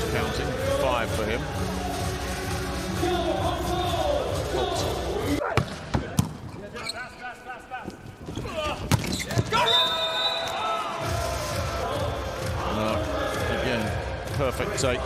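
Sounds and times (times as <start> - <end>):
arena crowd noise: 0.0 - 15.0.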